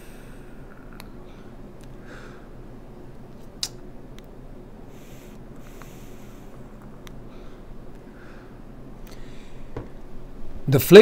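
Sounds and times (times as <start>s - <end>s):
air conditioner whooshing: 0.0s - 11.0s
soft rush of air: 4.6s - 11.0s.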